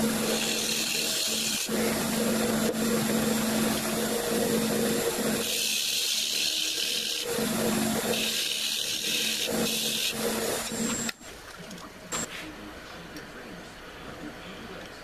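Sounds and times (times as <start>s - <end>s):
lathe motor hum: 0.0s - 11.1s.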